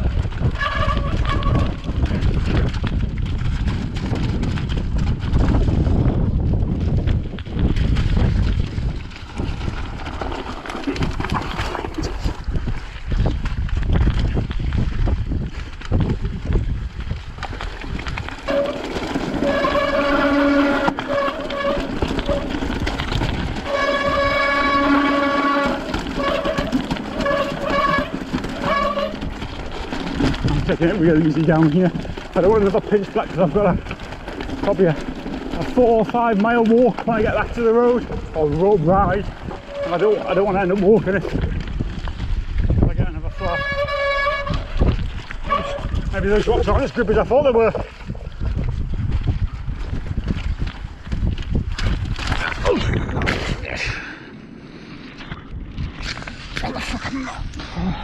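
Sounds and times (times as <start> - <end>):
bike rattling over rocky trail: 0.0 - 54.2, 55.1 - 58.0
wind buffeting microphone: 0.0 - 58.0.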